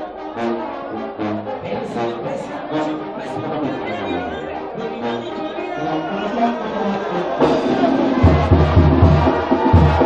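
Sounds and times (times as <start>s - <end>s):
brass band playing: 0.0s - 10.0s
crowd voices: 0.0s - 10.0s
tuba: 0.0s - 10.0s.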